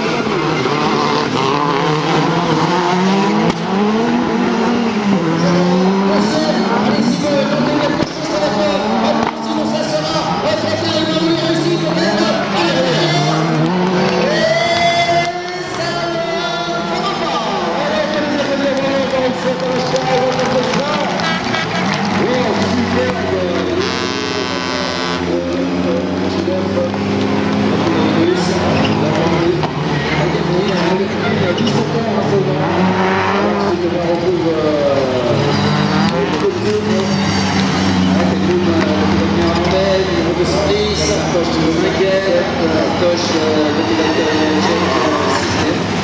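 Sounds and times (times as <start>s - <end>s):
race car engines revving: 0.0s - 46.0s.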